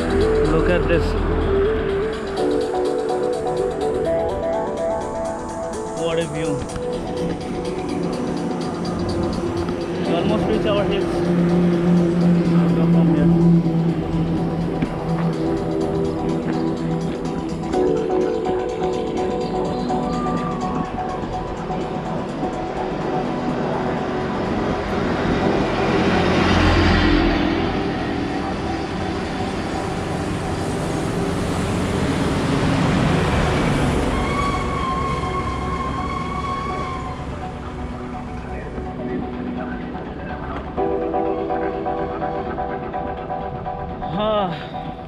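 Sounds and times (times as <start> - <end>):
road vehicles passing: 0.0 - 45.0.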